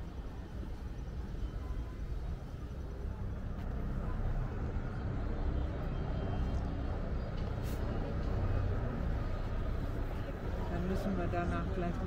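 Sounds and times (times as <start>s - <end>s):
city road traffic rumble: 0.0s - 12.0s.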